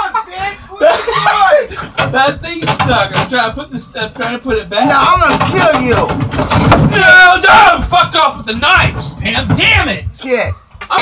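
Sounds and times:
knocks and clatters: 1.7s - 11.0s.

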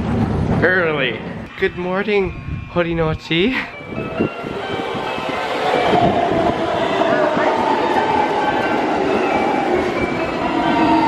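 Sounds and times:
train wheels rumbling on rails: 0.0s - 1.5s, 2.3s - 11.0s.

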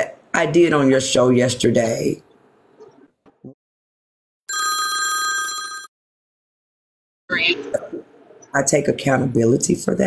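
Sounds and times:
electronic ringing tone: 4.5s - 5.9s.

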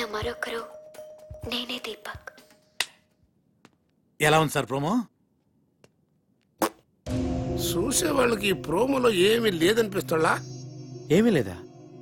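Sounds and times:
finger snap: 2.8s - 3.0s
faint music tone: 7.1s - 12.0s.

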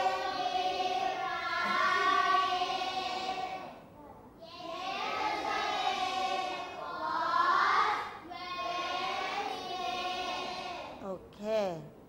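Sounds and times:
children reading aloud in unison: 0.0s - 11.1s.

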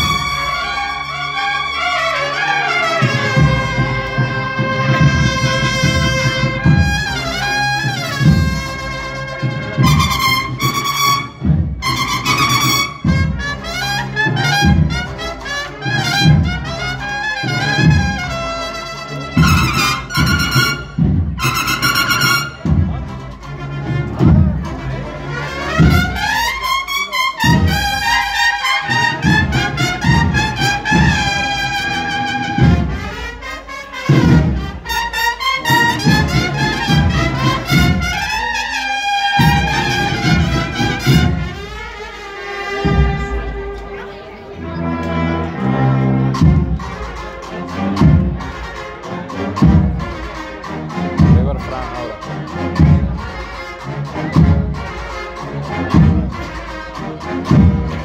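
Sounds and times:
bugle-style cornets: 0.0s - 43.8s, 44.6s - 58.0s
steady drum beat: 3.0s - 43.9s, 46.1s - 58.0s.

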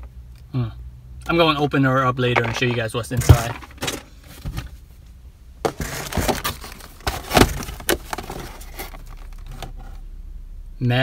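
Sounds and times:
plastic and cardboard packages clacking: 2.4s - 4.7s, 5.6s - 9.8s.

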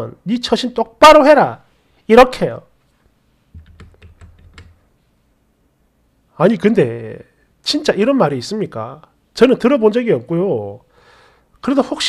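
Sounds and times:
keyboard key clicks: 3.6s - 4.8s.

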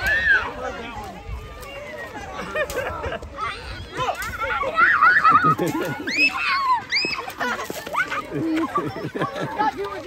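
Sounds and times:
people talking and calling: 0.0s - 10.0s.

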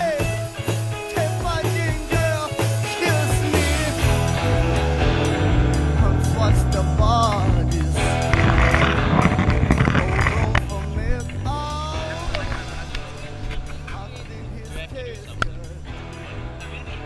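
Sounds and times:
music with repeating bass line: 0.0s - 17.0s.

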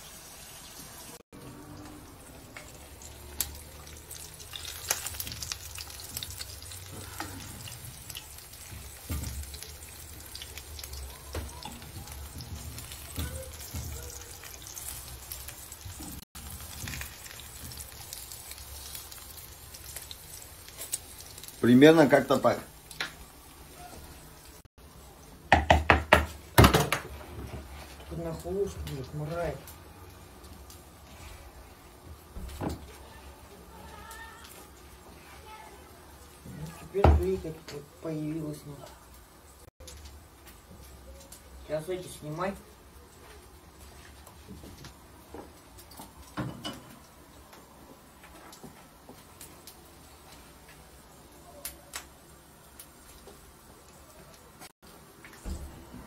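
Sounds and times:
oil spattering in a pan: 2.3s - 23.4s
sharp knocks on a plastic bowl: 25.5s - 27.0s.

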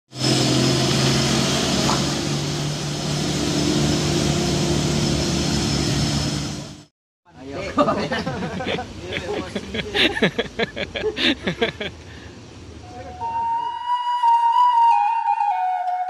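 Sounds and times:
diesel engines running: 0.1s - 6.9s, 8.2s - 12.9s
person laughing: 7.8s - 12.0s.

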